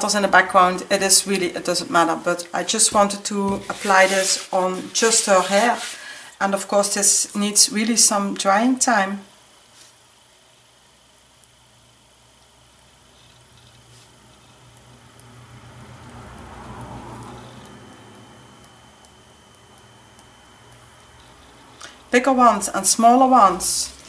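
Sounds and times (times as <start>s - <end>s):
soft rustle: 3.6s - 6.0s.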